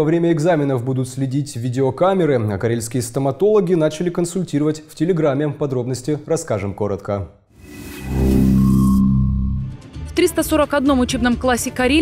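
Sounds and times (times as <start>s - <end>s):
whoosh: 7.6s - 9.8s
sustained low chord: 7.8s - 9.8s.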